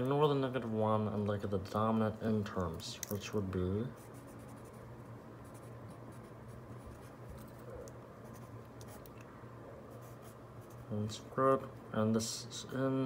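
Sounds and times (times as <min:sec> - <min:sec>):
faint low hum: 0:00.0 - 0:13.0
pen scratching on paper: 0:03.9 - 0:09.1, 0:09.9 - 0:10.9.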